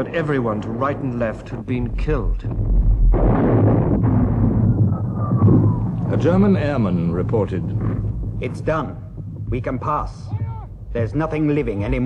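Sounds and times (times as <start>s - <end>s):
rumble of shellfire: 0.0s - 12.0s.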